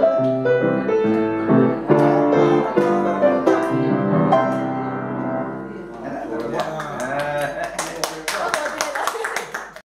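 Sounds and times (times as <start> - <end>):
hand clapping: 6.4 - 9.8.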